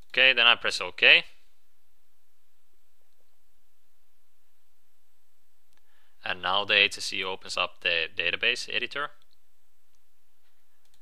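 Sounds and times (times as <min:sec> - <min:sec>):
low room hiss: 0:00.0 - 0:11.0
computer mouse clicks: 0:10.8 - 0:11.0.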